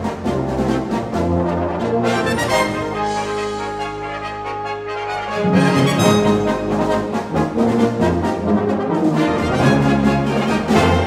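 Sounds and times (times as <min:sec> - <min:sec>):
brass intro music: 0:00.1 - 0:11.0.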